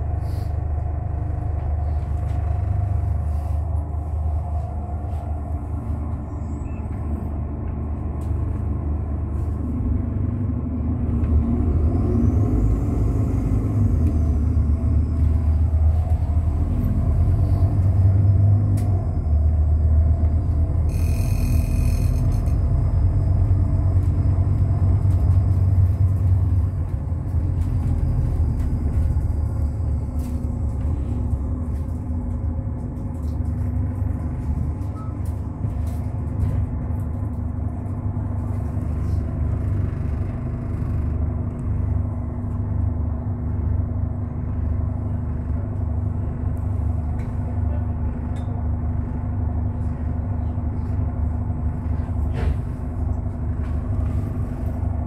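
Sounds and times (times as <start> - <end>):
bus engine rumble: 0.0 - 55.0
brief high-pitched tone: 20.9 - 22.6.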